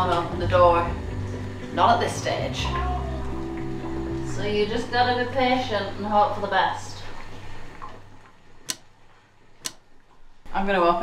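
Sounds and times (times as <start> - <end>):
clock ticking: 8.7 - 8.9, 9.6 - 9.9.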